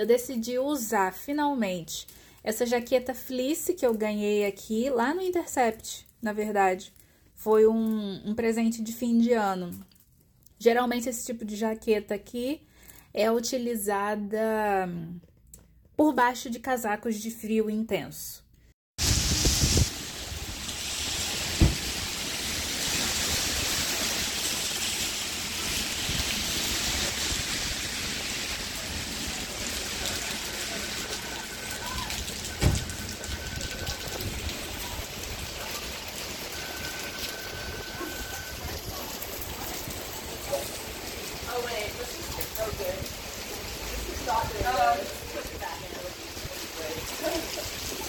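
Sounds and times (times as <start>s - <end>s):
rain on wet street: 19.0s - 48.0s.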